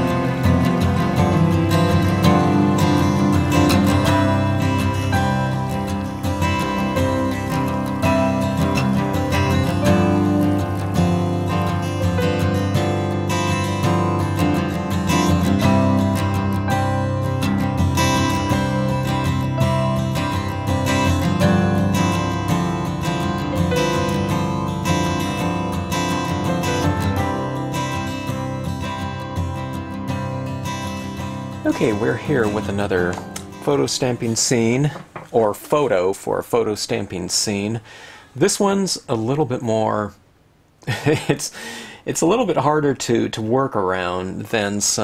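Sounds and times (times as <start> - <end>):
acoustic guitar music: 0.0 - 40.0.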